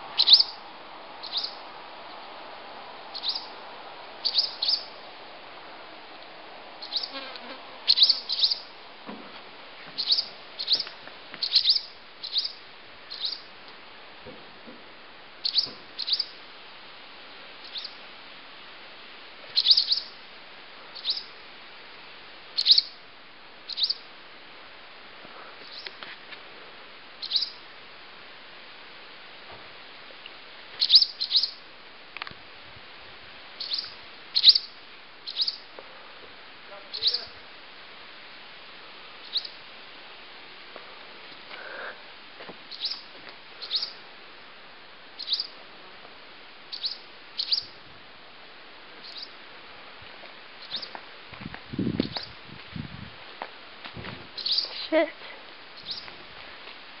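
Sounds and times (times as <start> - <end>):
birds calling in alarm: 0.2 - 0.6, 1.2 - 1.6, 3.1 - 3.6, 4.2 - 5.0, 6.8 - 7.2, 7.9 - 8.7, 10.0 - 13.5, 15.4 - 16.4, 19.6 - 20.1, 21.0 - 21.3, 22.6 - 22.9, 23.7 - 24.0, 27.2 - 27.6, 30.8 - 31.6, 33.6 - 35.7, 36.8 - 37.4, 39.2 - 39.6, 42.7 - 44.0, 45.2 - 45.6, 46.7 - 47.7, 49.0 - 49.4, 54.4 - 54.9, 55.8 - 56.1.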